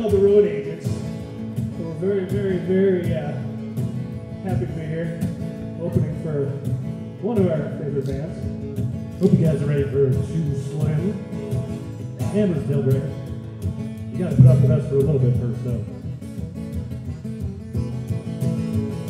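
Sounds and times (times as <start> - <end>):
acoustic guitar strumming: 0.0 - 19.0
mandolin strumming: 0.0 - 19.0.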